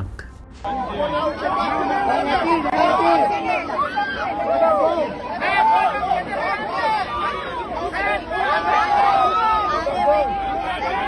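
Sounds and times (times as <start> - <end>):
crowd shouting and jeering: 0.6 - 11.0.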